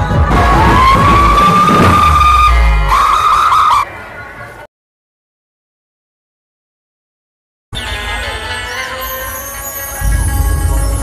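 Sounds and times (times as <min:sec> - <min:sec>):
street noise: 0:00.0 - 0:04.7, 0:07.7 - 0:11.0
loud high warbling tone: 0:00.3 - 0:04.1.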